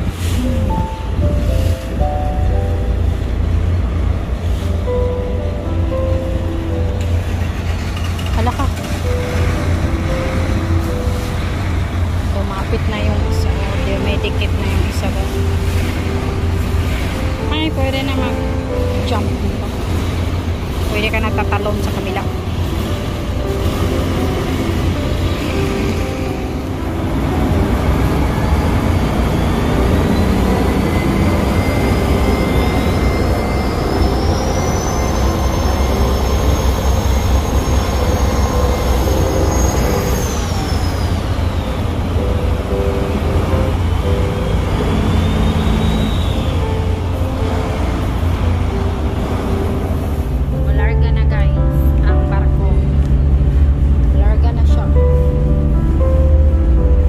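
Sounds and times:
diesel engines rumbling: 0.0 - 57.0
thin high whine: 28.3 - 41.8.

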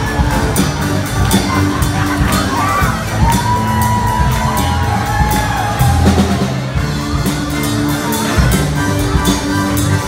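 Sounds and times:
audience cheering and shouting: 0.0 - 9.8
live rock band playing: 0.0 - 10.0.

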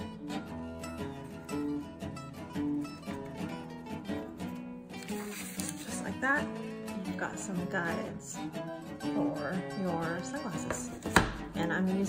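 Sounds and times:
plucked acoustic guitar: 0.0 - 12.0.

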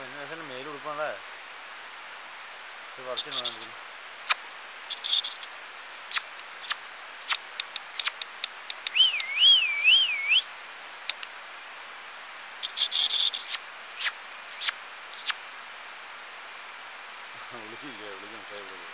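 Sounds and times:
birds calling: 3.0 - 3.7, 4.3 - 5.5, 6.1 - 11.3, 12.6 - 15.4
warbling bird whistle: 4.9 - 5.4, 6.1 - 7.4, 8.0 - 8.2, 8.9 - 10.5, 12.6 - 15.4.

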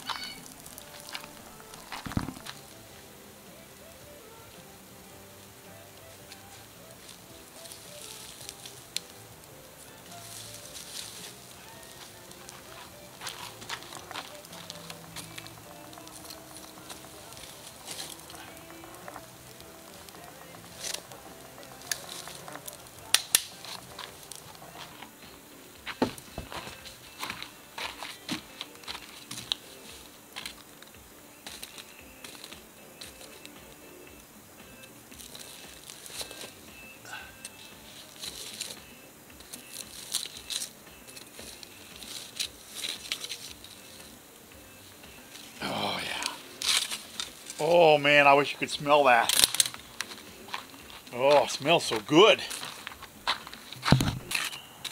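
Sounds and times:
campfire crackling and popping: 0.0 - 54.9
faint background music: 0.0 - 54.9.

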